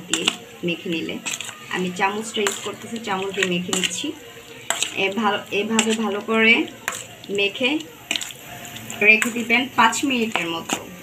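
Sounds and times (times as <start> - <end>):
woman's voice: 0.0 - 4.3, 4.9 - 7.9, 9.0 - 11.0
spoon clinking on metal bowl: 0.0 - 10.9
wet stirring and squelching: 0.0 - 11.0.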